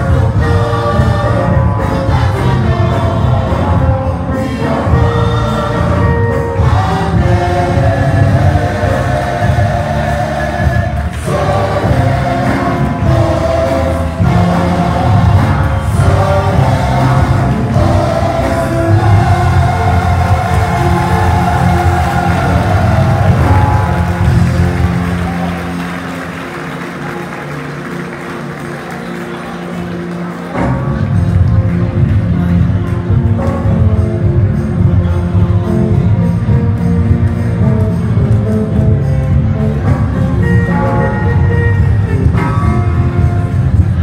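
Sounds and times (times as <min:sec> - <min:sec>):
heavy bass: 0:00.0 - 0:26.5
choir singing: 0:00.0 - 0:26.6.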